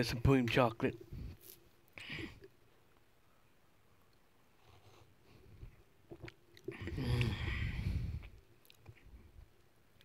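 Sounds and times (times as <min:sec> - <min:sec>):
sipping and swallowing: 0:05.7 - 0:09.1.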